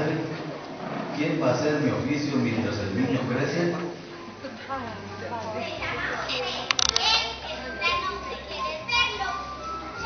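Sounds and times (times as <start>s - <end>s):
children's voices: 5.6s - 10.0s
sharp clicks: 6.7s - 7.1s.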